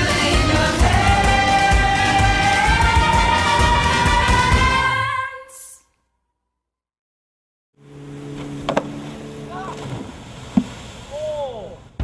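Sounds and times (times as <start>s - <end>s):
boat engine humming: 7.8s - 12.0s
rush of boat wake: 7.8s - 12.0s.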